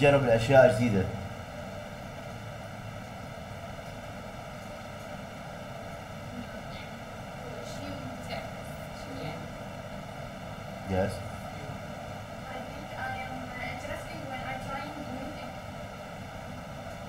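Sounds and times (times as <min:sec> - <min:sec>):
faint hum: 0:00.0 - 0:17.0.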